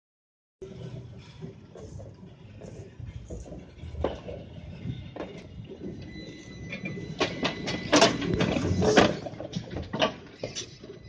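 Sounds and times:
tram wheels clicking and knocking: 0:00.6 - 0:11.0
tram whine on rails: 0:00.6 - 0:11.0.

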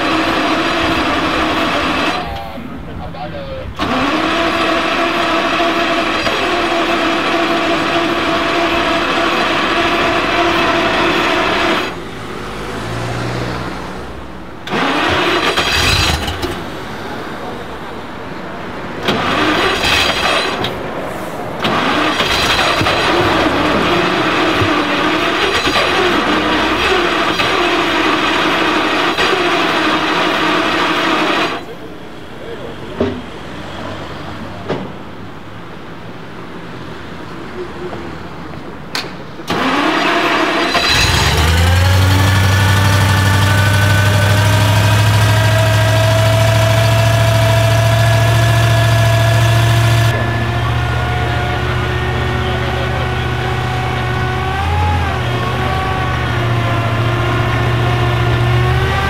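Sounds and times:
car engine idling: 0:00.0 - 0:33.3, 0:38.3 - 0:59.0.

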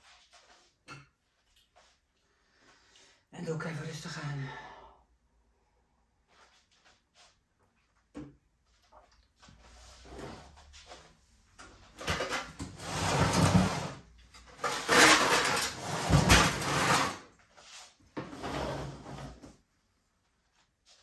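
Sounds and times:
rustling and scraping: 0:00.0 - 0:02.1, 0:08.6 - 0:19.6.

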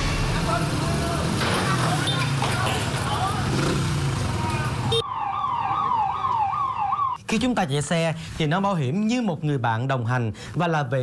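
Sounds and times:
noisy street commotion: 0:00.0 - 0:07.3
ambulance siren wailing: 0:04.6 - 0:07.2.

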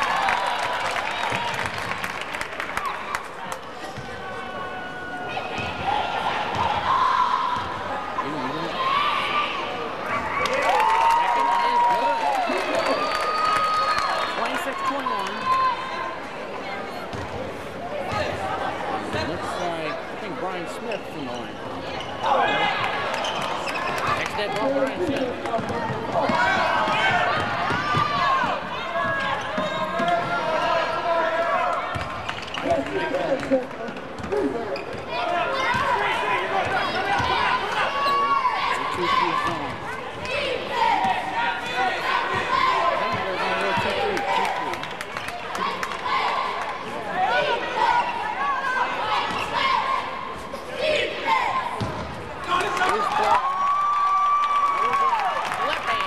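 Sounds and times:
shouts and chatter: 0:00.0 - 0:56.0.

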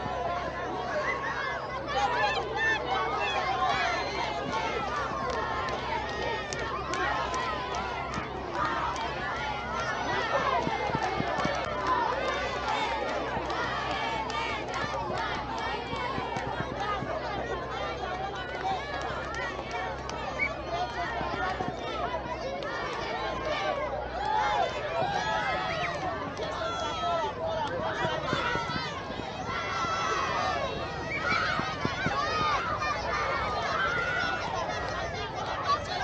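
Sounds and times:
children chattering and calling out: 0:00.0 - 0:36.0.

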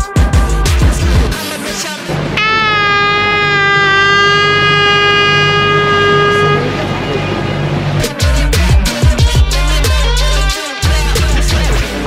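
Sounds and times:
music: 0:00.0 - 0:12.0
horn long blast: 0:02.4 - 0:08.5.

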